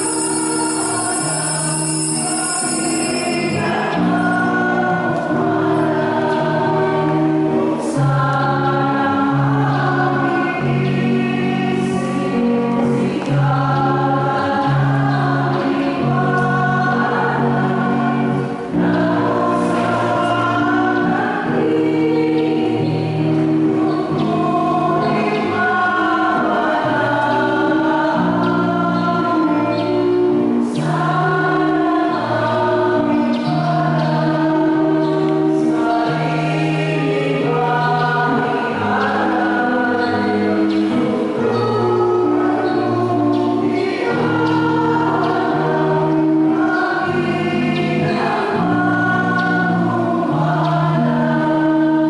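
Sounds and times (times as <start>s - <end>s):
church choir singing a hymn: 0.0s - 52.0s.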